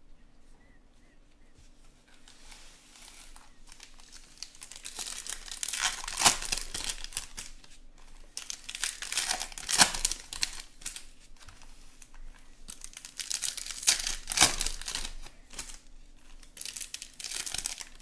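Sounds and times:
foil wrappers crinkling and tearing: 2.0 - 18.0.

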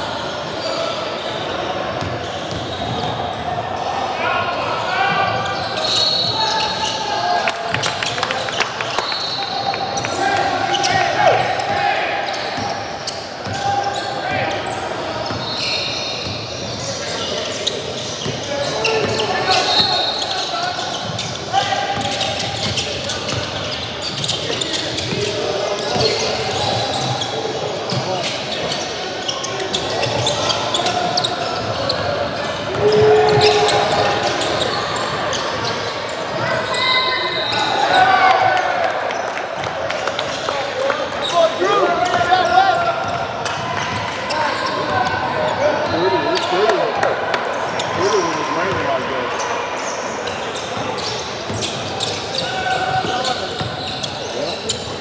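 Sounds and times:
sneakers squeaking: 0.1 - 55.0.

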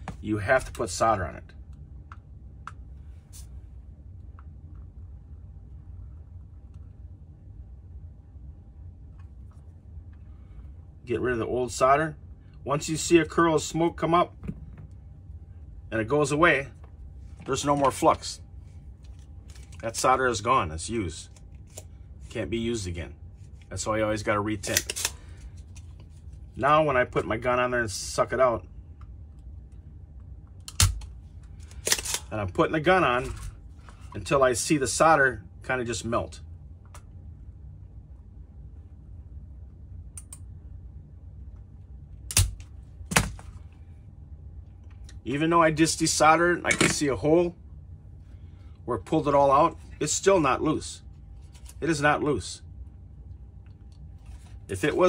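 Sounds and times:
low steady hum: 0.0 - 55.0
desoldering pump snap: 42.3 - 43.4.

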